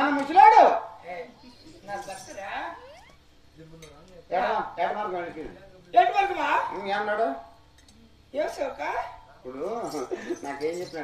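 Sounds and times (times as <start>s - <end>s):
soft voices: 1.1s - 4.2s
light metallic chink: 3.7s - 4.2s.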